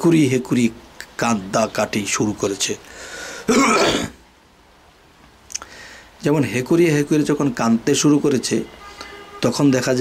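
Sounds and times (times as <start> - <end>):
man drawing a breath: 2.9 - 3.5, 5.6 - 6.2
man clearing his throat: 3.5 - 4.2.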